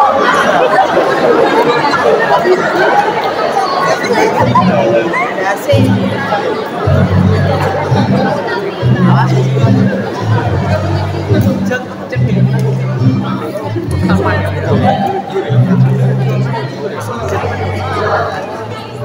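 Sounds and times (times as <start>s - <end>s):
audience chatter: 0.0s - 19.0s
low held music notes: 5.7s - 19.0s.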